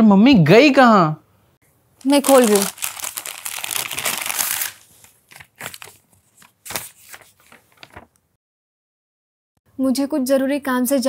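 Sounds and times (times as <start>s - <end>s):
paper crackling rustle: 2.0s - 8.2s.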